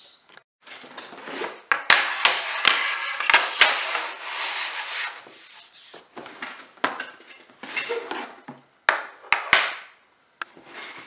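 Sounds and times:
plastic plates scraping across table: 1.1s - 6.0s.

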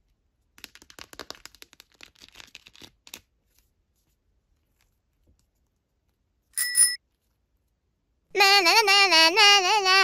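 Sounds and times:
notification bell ding: 6.6s - 7.0s.

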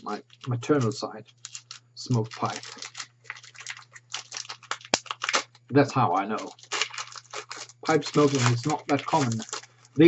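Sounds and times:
plastic wrapper crinkling: 0.0s - 10.0s.

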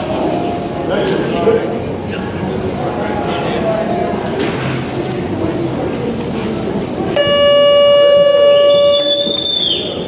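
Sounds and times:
electronic horn note: 7.2s - 9.3s.

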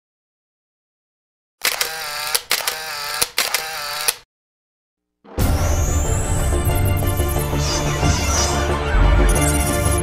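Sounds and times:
sharp clicks: 1.6s - 4.2s
short mechanical whirs: 1.6s - 4.2s.

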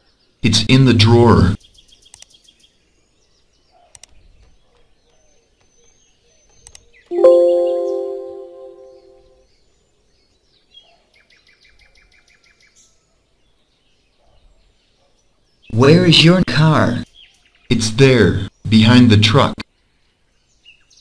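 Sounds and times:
bell-like chime: 7.1s - 9.2s.

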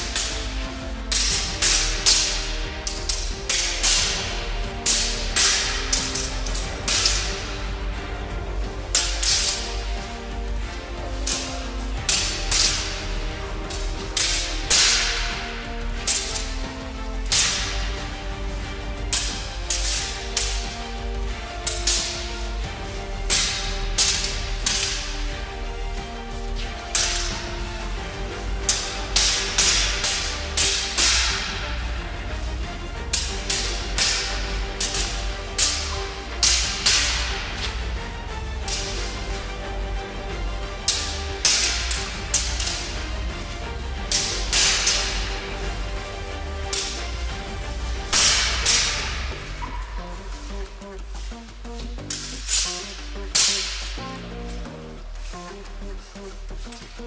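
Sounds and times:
background music with bass line: 0.0s - 57.0s
steel swords clashing: 0.0s - 57.0s.

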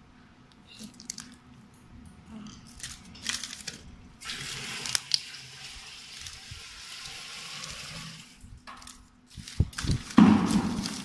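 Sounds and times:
plastic pouches crinkling: 0.8s - 1.7s, 2.4s - 6.8s, 8.6s - 11.0s.

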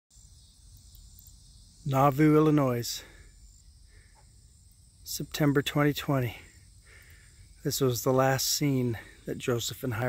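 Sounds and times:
crickets and insects chirping: 0.1s - 10.0s
man speaking: 1.8s - 3.2s, 5.1s - 6.6s, 7.6s - 10.0s.

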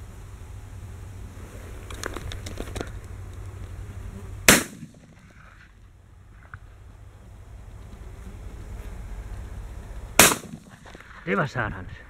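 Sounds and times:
shotgun shot: 4.5s - 5.2s, 10.2s - 10.8s.

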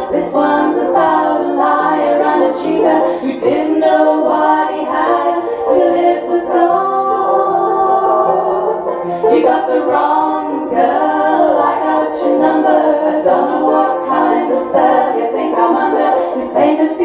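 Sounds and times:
banjo: 0.0s - 17.0s
women singing in harmony: 0.0s - 17.0s.

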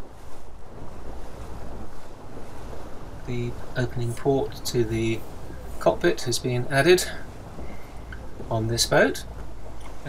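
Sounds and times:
water rushing along boat hull: 0.0s - 10.0s.

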